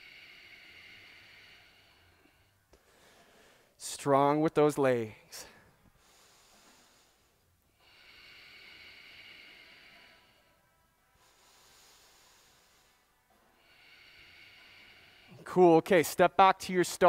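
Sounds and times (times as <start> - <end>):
person breathing slowly: 0.0 - 3.8, 5.2 - 15.5.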